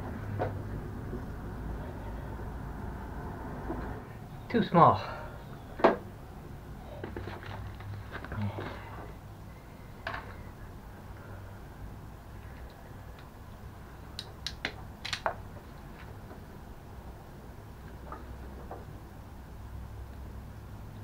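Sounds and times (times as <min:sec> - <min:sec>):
low steady hum: 0:00.0 - 0:21.0
rustling and handling noises: 0:06.9 - 0:09.2
sharp tool clicks: 0:14.2 - 0:15.3.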